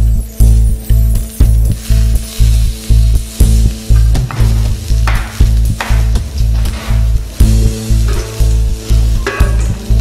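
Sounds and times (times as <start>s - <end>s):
fish sizzling in a pan: 0.0s - 10.0s
music with steady bass beat: 0.0s - 10.0s.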